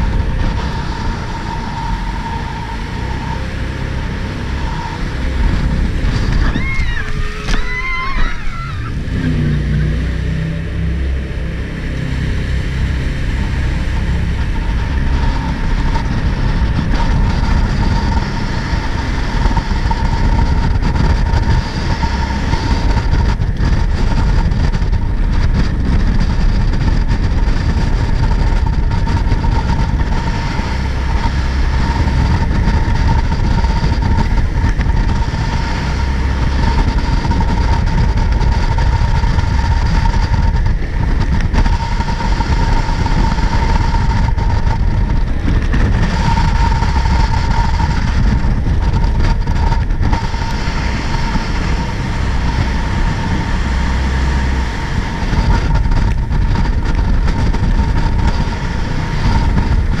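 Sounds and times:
boat engine rumble: 0.0 - 60.0
high whine: 0.0 - 60.0.

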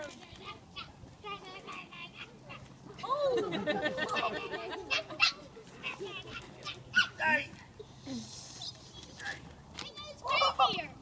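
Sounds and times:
children's voices: 0.0 - 11.0.

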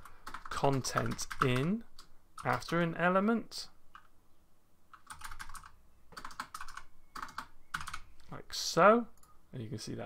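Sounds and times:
typing on computer keyboard: 0.0 - 2.8, 4.9 - 8.0.

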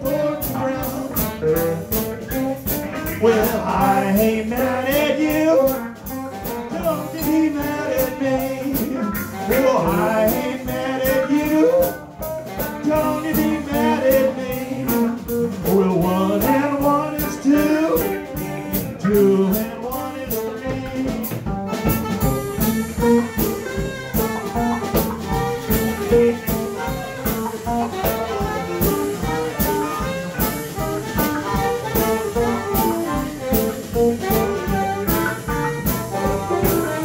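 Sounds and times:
drum kit beat: 0.0 - 37.0
electric guitar: 0.0 - 37.0.

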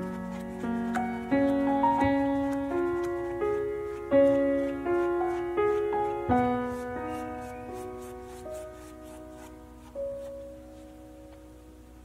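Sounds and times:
slow soft piano: 0.0 - 12.0.

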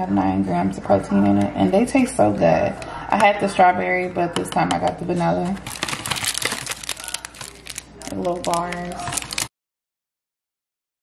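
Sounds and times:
cardboard and wrapper crinkling: 5.6 - 9.5.

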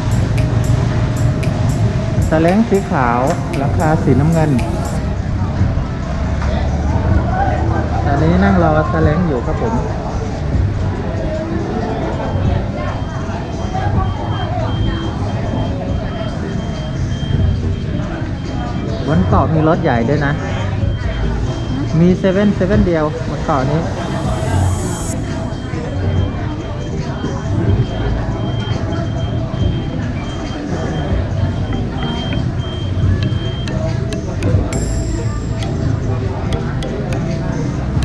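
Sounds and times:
reversing alarm beeps: 0.0 - 5.1, 13.0 - 18.6, 20.5 - 22.2, 23.8 - 35.8
engines rumbling: 0.0 - 8.1, 20.8 - 38.0
people talking: 0.0 - 38.0.

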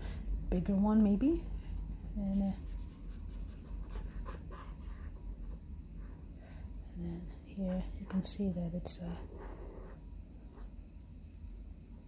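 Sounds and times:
marker tapping and scratching paper: 2.3 - 5.2.

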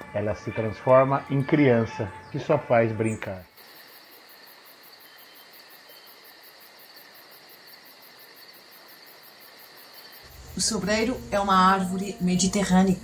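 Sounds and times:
insects chirring: 0.0 - 13.0.

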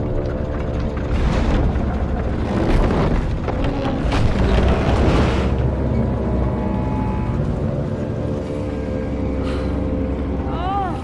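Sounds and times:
held drone tones: 0.0 - 11.0
low rumble: 0.0 - 11.0.

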